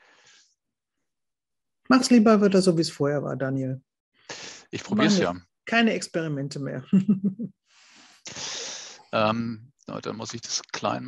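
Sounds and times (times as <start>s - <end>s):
woman laughing: 5.0s - 5.3s, 6.9s - 7.5s
breathy exhale: 7.8s - 9.1s.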